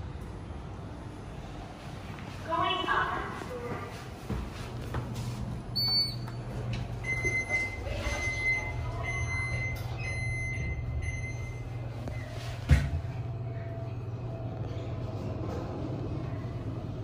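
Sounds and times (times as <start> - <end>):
low steady hum: 5.5 - 17.0.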